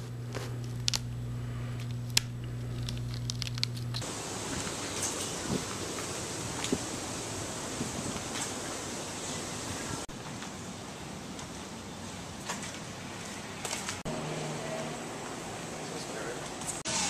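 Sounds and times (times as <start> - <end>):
low steady hum: 0.0 - 13.3
outdoor hiss: 4.0 - 17.0.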